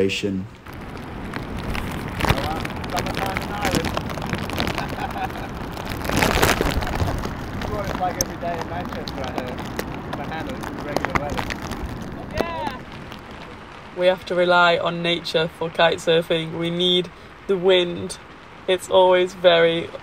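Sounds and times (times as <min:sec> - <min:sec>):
man speaking: 0:00.0 - 0:00.5, 0:02.3 - 0:03.9, 0:07.7 - 0:09.6, 0:10.2 - 0:11.4, 0:12.2 - 0:12.8
wind and rain on microphone: 0:00.0 - 0:20.0.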